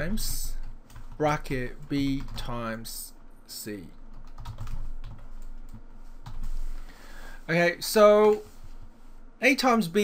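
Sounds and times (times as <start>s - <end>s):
computer keyboard typing: 0.5s - 1.4s, 2.1s - 2.5s, 4.1s - 6.5s.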